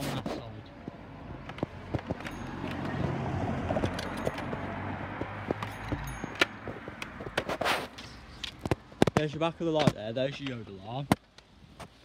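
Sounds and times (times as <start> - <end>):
footsteps clicking: 0.8 - 9.2.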